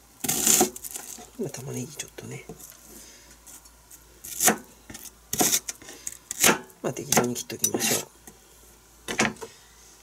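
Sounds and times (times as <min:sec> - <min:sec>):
knife slicing onion on board: 0:00.2 - 0:01.0, 0:04.3 - 0:08.1.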